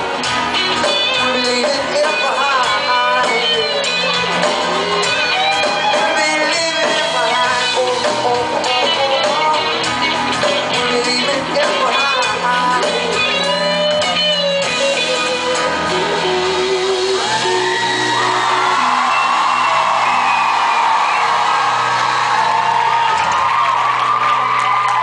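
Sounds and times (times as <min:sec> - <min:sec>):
audience screaming and whooping: 0:00.0 - 0:10.8, 0:13.2 - 0:25.0
pop-rock band with acoustic guitar: 0:00.0 - 0:25.0.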